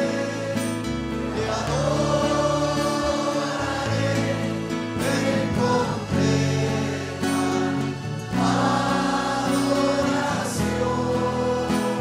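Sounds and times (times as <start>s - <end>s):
congregation singing: 0.0s - 12.0s
musical accompaniment: 0.0s - 12.0s.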